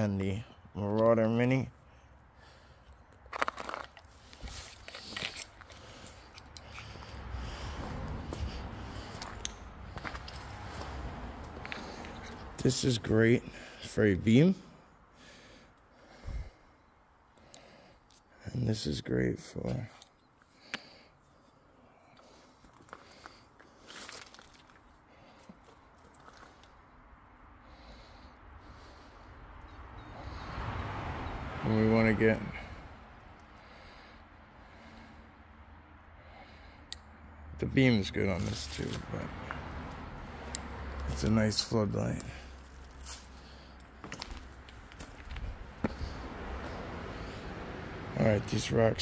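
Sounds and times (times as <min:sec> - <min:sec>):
footsteps on loose rocks: 0:03.2 - 0:07.0, 0:42.1 - 0:46.2.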